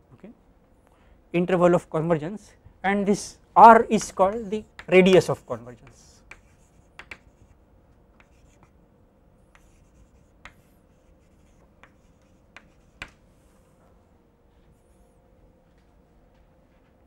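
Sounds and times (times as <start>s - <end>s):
chalk tapping on blackboard: 4.0s - 7.6s, 8.2s - 8.7s, 9.5s - 13.2s
chalk scraping on blackboard: 5.2s - 7.6s, 8.2s - 8.7s, 9.6s - 13.2s.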